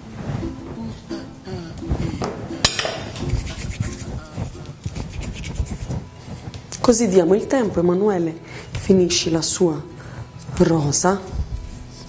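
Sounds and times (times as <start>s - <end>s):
utensils clicking and clinking: 2.2s - 3.7s
light rubbing on table: 3.1s - 7.6s.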